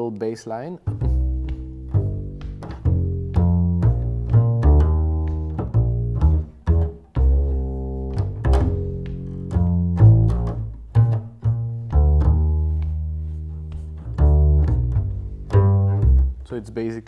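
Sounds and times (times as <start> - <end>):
plucked double bass: 0.0 - 17.0.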